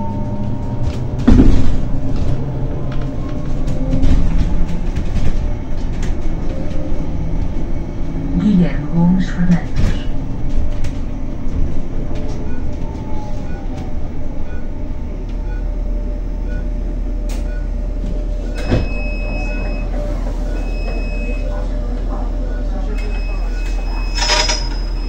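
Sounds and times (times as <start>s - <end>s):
bus cabin rumble: 0.0s - 25.0s
clunk: 0.8s - 2.4s.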